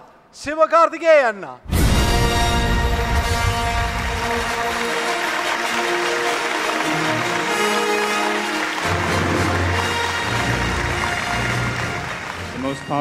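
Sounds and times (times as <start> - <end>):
stage music: 1.6 - 13.0
deep bass: 1.7 - 4.8
audience applauding: 2.6 - 13.0.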